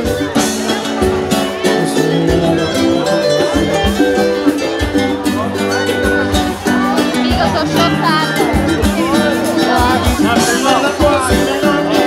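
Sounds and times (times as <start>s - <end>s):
loud party music: 0.0s - 12.0s
voices: 0.0s - 12.0s.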